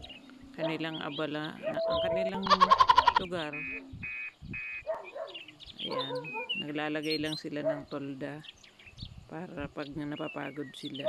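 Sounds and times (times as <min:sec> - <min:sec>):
faint bird chirps: 0:00.0 - 0:11.0
short high animal calls: 0:02.5 - 0:03.8.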